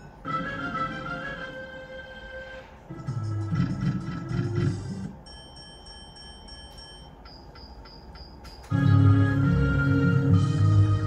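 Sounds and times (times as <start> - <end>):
low electronic tune: 0.0 - 5.2, 8.1 - 11.0.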